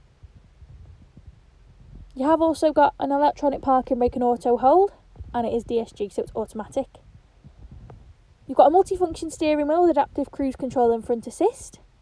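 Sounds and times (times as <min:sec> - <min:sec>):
soft low thumps: 0:00.0 - 0:11.0
faint low rumble: 0:00.0 - 0:12.0.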